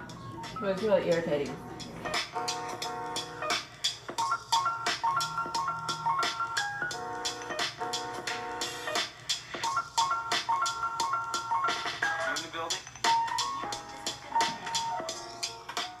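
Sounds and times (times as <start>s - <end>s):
electronic music with synth melody: 0.0s - 16.0s.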